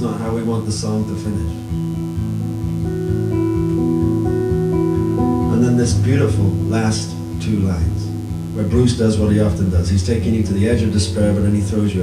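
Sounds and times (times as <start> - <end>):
acoustic guitar chords: 0.0 - 12.0.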